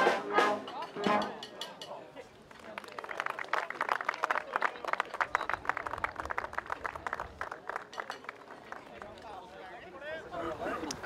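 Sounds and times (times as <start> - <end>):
small group applauding: 2.5 - 9.4.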